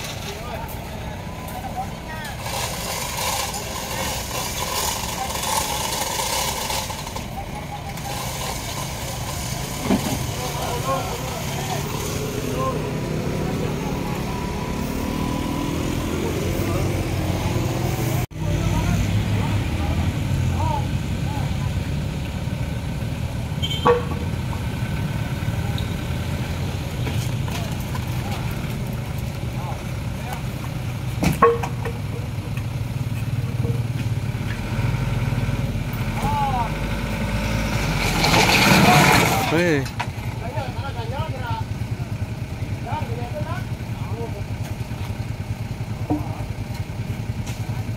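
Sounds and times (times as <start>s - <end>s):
indistinct voices: 0.0s - 23.4s, 35.8s - 44.9s
engine rumbling: 0.0s - 47.9s.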